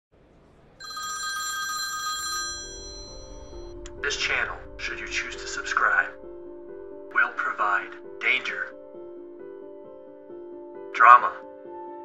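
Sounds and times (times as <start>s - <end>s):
telephone ringing: 0.8s - 3.8s
music with low notes: 2.4s - 11.4s.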